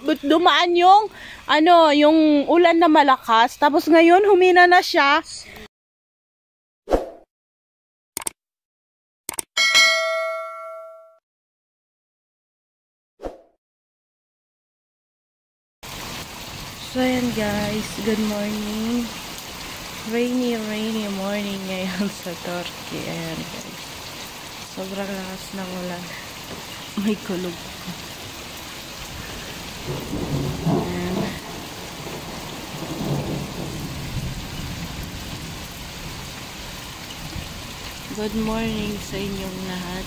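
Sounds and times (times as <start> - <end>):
steady rain falling: 0.0 - 4.8, 15.8 - 40.0.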